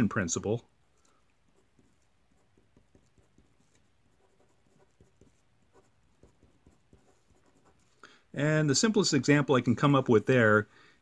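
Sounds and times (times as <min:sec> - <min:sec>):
marker pen scratching: 0:01.4 - 0:07.9.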